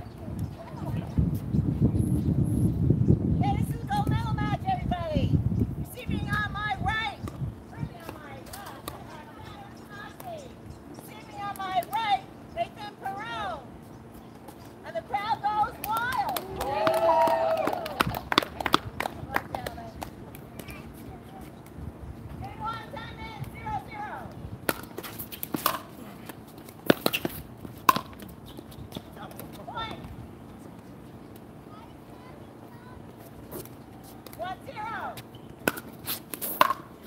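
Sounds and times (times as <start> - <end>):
people talking: 0.0 - 1.2, 3.4 - 5.3, 5.9 - 13.6, 14.8 - 21.6, 22.4 - 24.4, 29.1 - 30.1, 31.7 - 33.6, 34.3 - 35.2.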